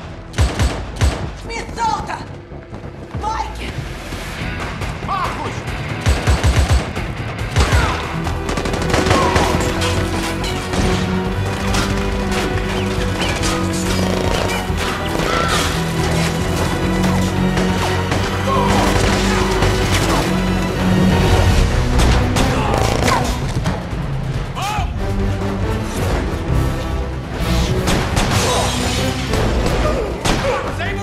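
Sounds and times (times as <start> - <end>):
tense film score: 0.0 - 31.0
gunfire: 0.3 - 1.4, 5.9 - 16.3.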